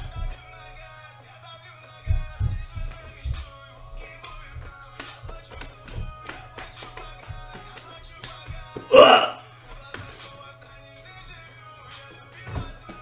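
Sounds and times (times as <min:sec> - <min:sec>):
pop music with bass thumps: 0:00.0 - 0:13.0
man shouting: 0:08.8 - 0:09.4.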